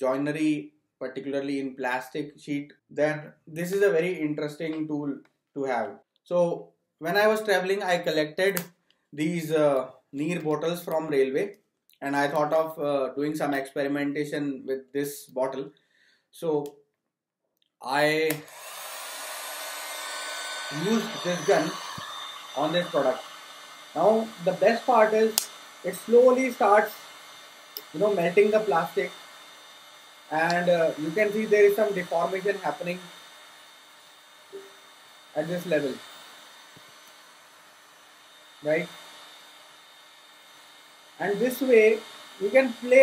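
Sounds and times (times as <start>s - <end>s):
hot air gun blowing: 18.2s - 43.0s.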